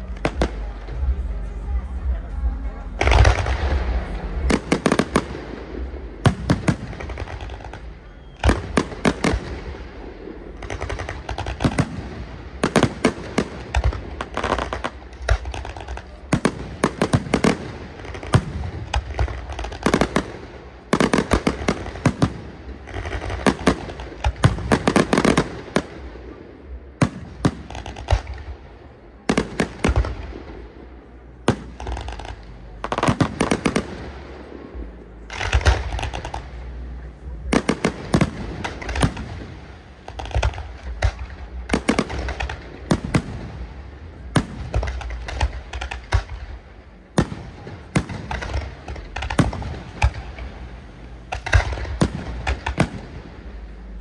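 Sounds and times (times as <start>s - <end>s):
fireworks bursting with bangs: 0.0s - 54.0s.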